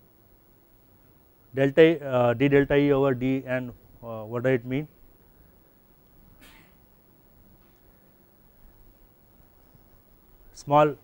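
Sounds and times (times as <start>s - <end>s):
faint short hiss: 6.4s - 6.9s.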